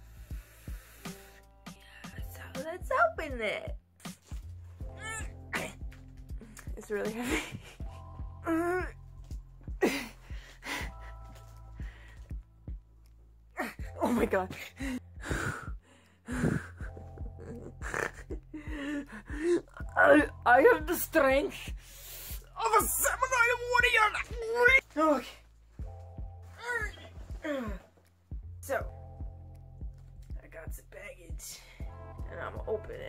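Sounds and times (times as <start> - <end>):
background music with low beat: 0.0 - 33.0
woman gasping and straining: 9.6 - 12.4, 13.6 - 20.2, 26.6 - 28.0
woman straining vocal noise: 16.3 - 20.2.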